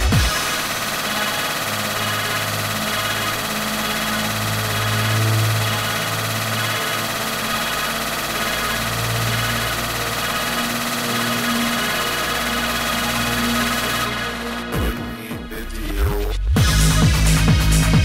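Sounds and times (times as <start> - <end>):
droning noisy synth: 0.0 - 18.0
deep bass tones: 14.7 - 18.0.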